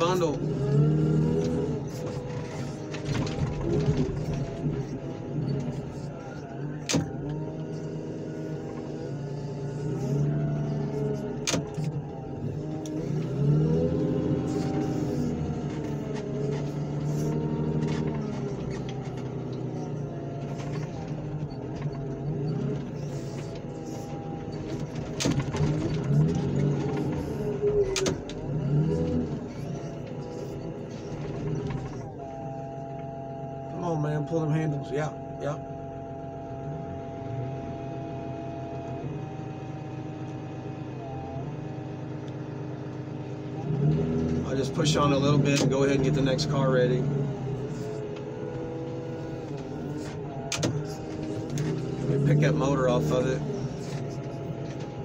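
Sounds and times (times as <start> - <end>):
loader engine under hydraulic load: 0.0 - 55.0.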